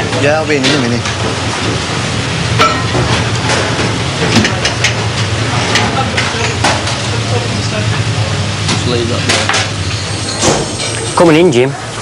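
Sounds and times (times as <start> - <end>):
pans and utensils clinking: 2.6 - 7.5.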